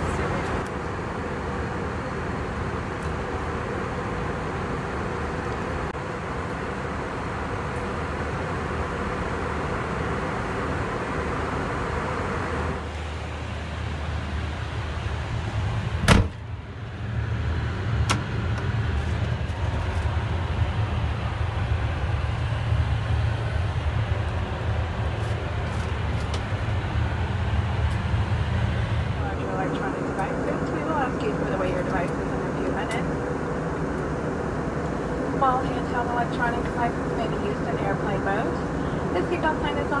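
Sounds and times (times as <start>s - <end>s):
airliner cabin noise: 0.0s - 40.0s.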